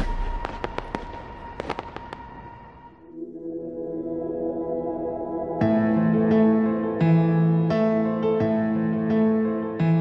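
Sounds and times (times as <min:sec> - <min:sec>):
fireworks crackling pops: 0:00.0 - 0:02.8.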